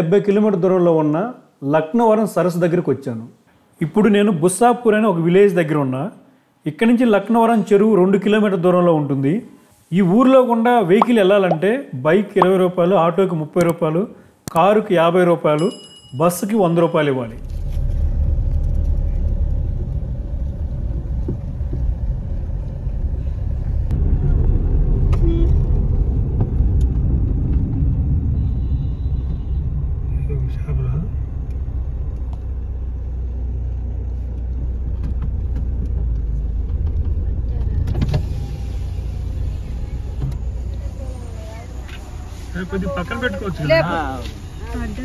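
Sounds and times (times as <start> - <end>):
car driving rumble inside cabin: 17.4 - 28.3, 29.8 - 38.0.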